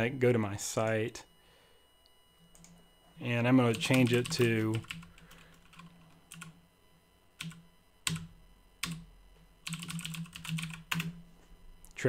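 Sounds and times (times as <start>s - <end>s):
computer keyboard typing: 2.5s - 2.8s, 3.7s - 6.6s, 7.4s - 11.1s.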